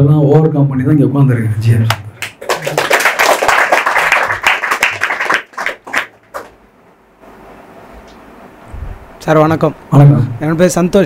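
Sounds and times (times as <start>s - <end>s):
audience clapping: 1.9s - 6.6s.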